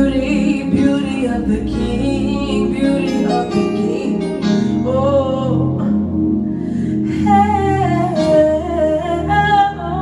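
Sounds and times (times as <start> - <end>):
electronic keyboard chords: 0.0 - 10.0
woman singing worship melody: 0.0 - 10.0.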